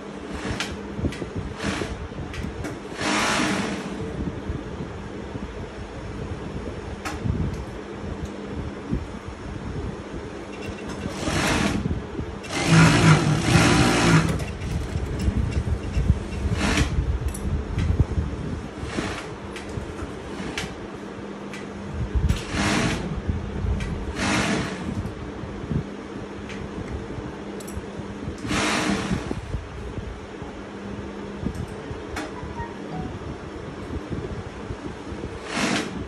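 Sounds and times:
steady low hum: 0.0s - 36.0s
sewing machine stitching: 1.5s - 2.0s, 2.9s - 4.0s, 11.0s - 11.8s, 12.4s - 15.0s, 22.4s - 23.1s, 24.1s - 24.9s, 28.4s - 29.3s, 35.4s - 36.0s.

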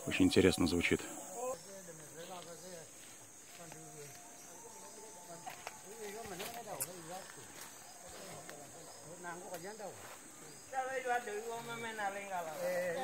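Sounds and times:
high insect drone: 0.0s - 13.0s
men chanting: 10.7s - 13.0s.

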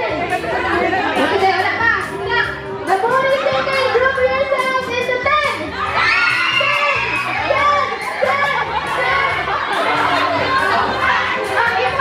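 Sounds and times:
children shouting and cheering: 2.9s - 12.0s.

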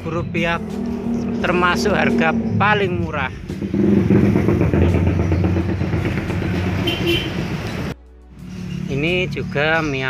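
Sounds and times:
motor engine droning: 0.0s - 7.9s.

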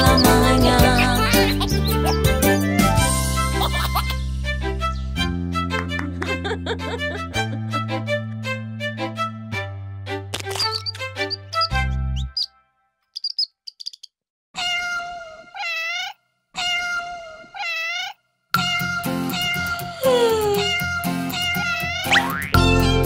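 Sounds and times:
bouncy children's tune: 0.0s - 9.2s, 18.6s - 23.0s
faint bird chirps: 10.6s - 12.5s, 13.2s - 14.2s
cartoon cat meowing: 14.6s - 22.2s.

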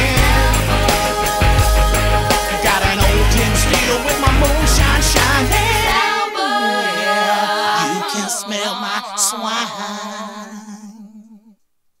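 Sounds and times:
held vocal note with vibrato: 5.6s - 11.6s.

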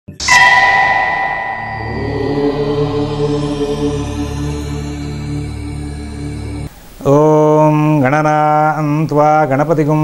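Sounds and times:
bell ringing: 0.2s - 4.4s
chanted drone in low voices: 0.4s - 6.7s.

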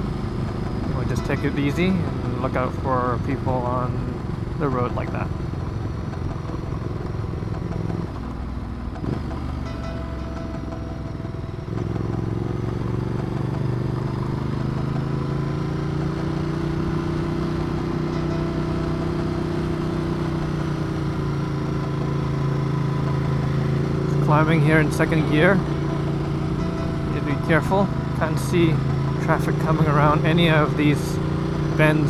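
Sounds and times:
motorcycle engine: 0.0s - 32.0s.

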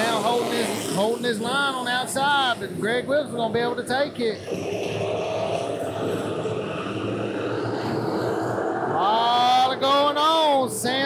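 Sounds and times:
man talking: 0.0s - 4.5s, 9.0s - 11.0s
race car engines at speed: 0.0s - 11.0s.

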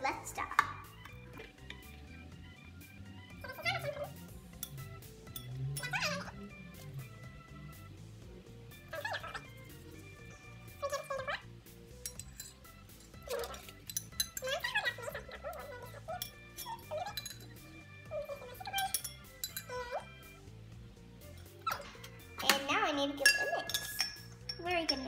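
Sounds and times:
background music: 0.0s - 25.0s
metal spoon clinking against glass: 4.5s - 6.0s, 12.0s - 14.7s, 15.6s - 17.7s, 18.7s - 20.0s, 23.2s - 25.0s.

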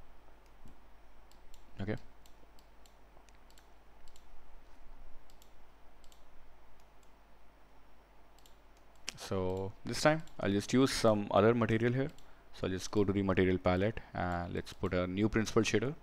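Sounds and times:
computer mouse clicks: 0.4s - 7.2s, 8.3s - 10.4s, 11.8s - 12.3s.

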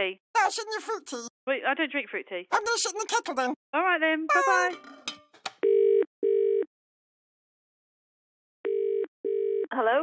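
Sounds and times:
telephone ringing tone: 8.7s - 9.7s.

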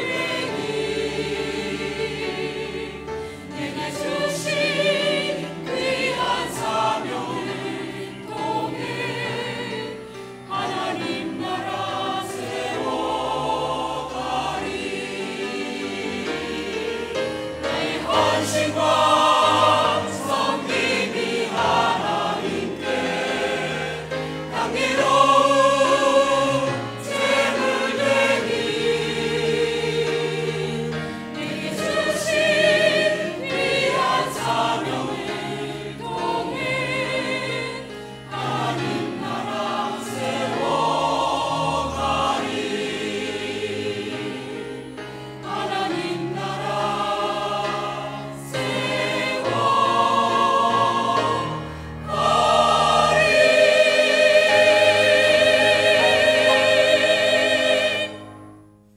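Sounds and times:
mixed choir singing in harmony: 0.0s - 58.9s
piano: 0.0s - 58.9s.

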